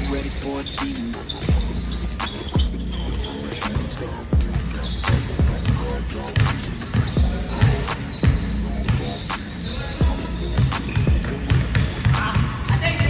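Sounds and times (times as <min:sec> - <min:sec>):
background music: 0:00.0 - 0:13.0
basketballs bouncing on court: 0:00.0 - 0:13.0
sneaker squeaks: 0:00.0 - 0:13.0.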